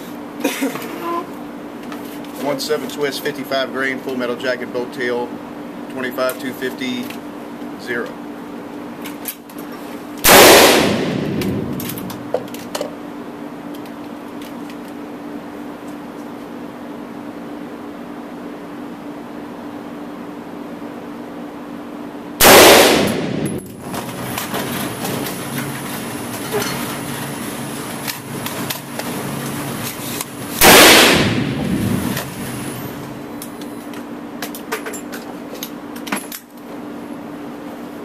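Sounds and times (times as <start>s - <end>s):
steady background hum: 0.0s - 38.0s
echoing rifle shots: 10.2s - 12.3s, 22.4s - 23.9s, 30.6s - 32.3s.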